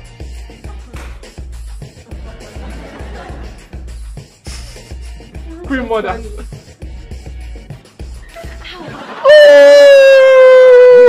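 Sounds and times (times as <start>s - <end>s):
person's high-pitched drawn-out cry: 5.4s - 5.8s, 9.2s - 11.0s.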